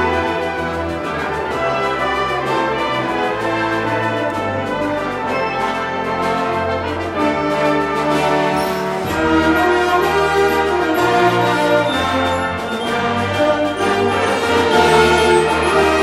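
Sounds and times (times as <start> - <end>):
wind band playing: 0.0 - 16.0.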